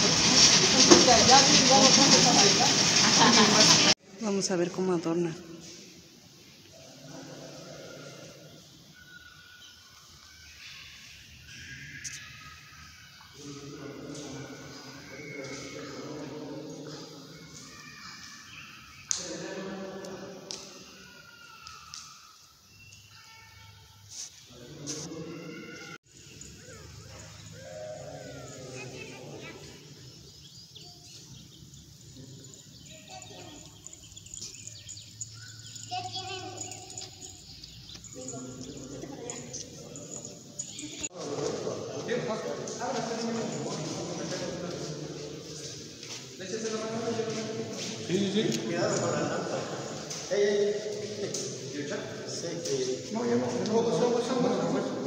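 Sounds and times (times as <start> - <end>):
faint voices talking: 24.5 - 55.0.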